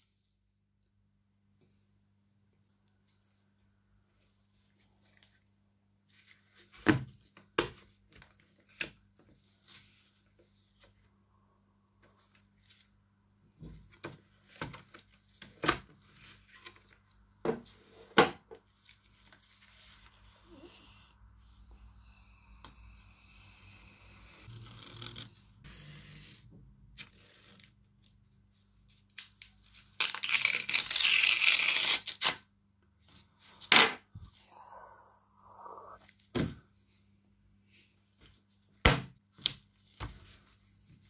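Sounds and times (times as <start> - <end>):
paper tearing: 29.9 - 32.4.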